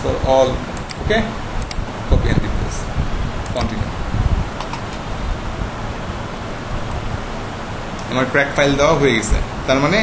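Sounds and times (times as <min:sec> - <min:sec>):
room background hiss: 0:00.0 - 0:10.0.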